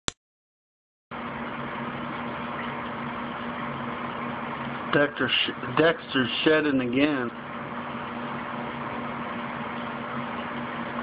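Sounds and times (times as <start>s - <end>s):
low electrical hum: 1.1s - 11.0s.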